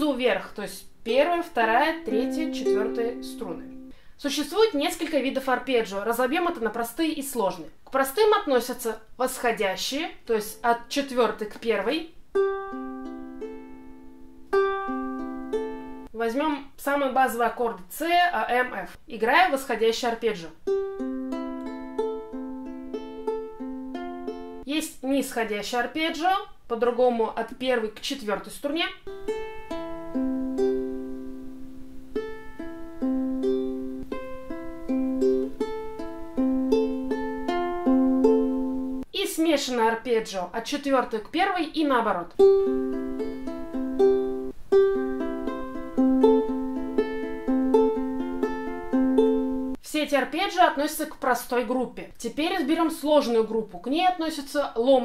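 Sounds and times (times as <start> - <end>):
ukulele arpeggio: 1.6 - 3.9, 12.3 - 16.1, 20.6 - 24.6, 29.0 - 39.1, 42.3 - 49.8.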